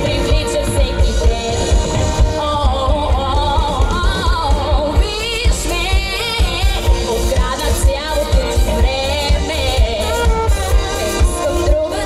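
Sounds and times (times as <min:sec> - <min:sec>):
live band playing: 0:00.0 - 0:12.0
steady drum beat: 0:00.0 - 0:12.0
woman singing: 0:00.0 - 0:12.0.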